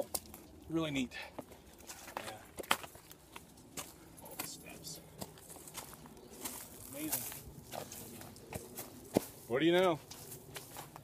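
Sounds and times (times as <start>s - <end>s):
footsteps on dry leaves and twigs: 1.4s - 11.0s.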